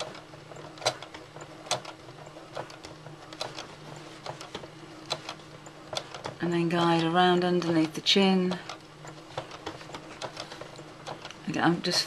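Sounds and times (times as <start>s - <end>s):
sewing machine clicks and ticks: 0.0s - 12.0s
sewing machine humming: 0.0s - 12.0s.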